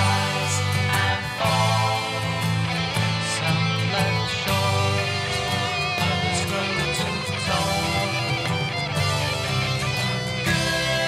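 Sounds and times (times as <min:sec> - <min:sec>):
instrumental rock music: 0:00.0 - 0:11.0.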